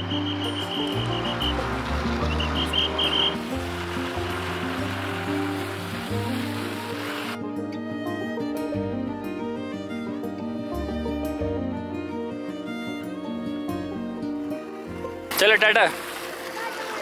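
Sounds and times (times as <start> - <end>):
steady rushing hiss: 0.0 - 7.4
background music low notes: 0.0 - 17.0.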